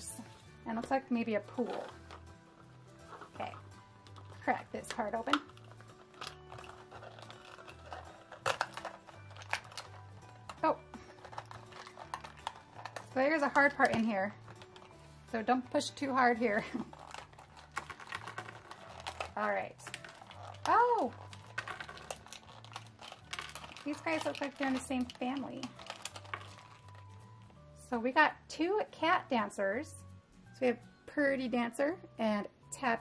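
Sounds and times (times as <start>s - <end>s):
plastic egg capsule clicking: 4.0s - 15.0s, 16.8s - 27.2s
plastic shell snapping: 4.9s - 9.9s.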